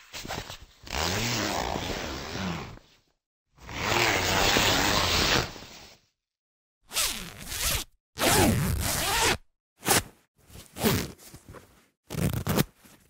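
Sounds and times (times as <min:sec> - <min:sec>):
zippers being pulled: 0:00.8 - 0:02.8, 0:06.9 - 0:11.2, 0:12.1 - 0:12.8.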